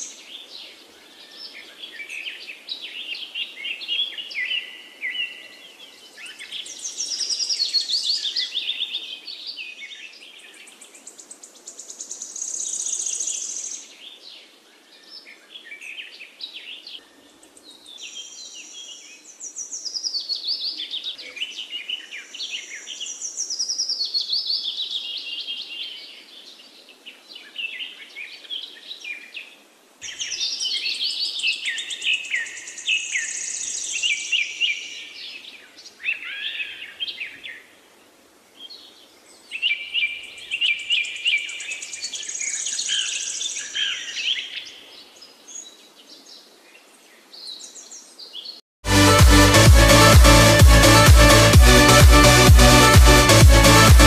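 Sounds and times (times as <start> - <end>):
chorus of birds singing: 38.6 - 48.6.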